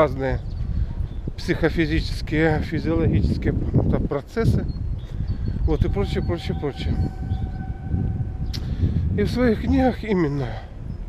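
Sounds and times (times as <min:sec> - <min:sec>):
low rumble: 0:05.7 - 0:10.0
steady tone: 0:05.8 - 0:09.9.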